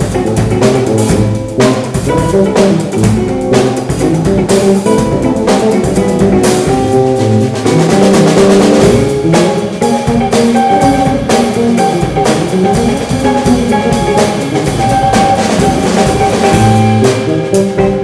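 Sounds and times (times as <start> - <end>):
drum kit: 0.0 - 18.0
electric guitars: 0.0 - 18.0.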